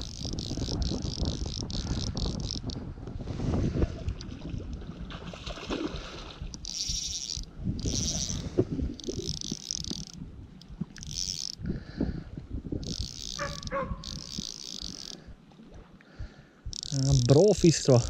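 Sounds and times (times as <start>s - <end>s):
fishing reel whirring: 0.0s - 2.8s, 6.5s - 11.8s, 12.7s - 15.4s, 16.7s - 18.0s.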